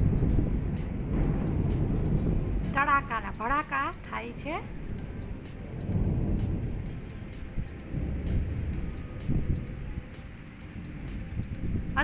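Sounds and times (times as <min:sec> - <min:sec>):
thunder rumbling: 0:00.0 - 0:12.0.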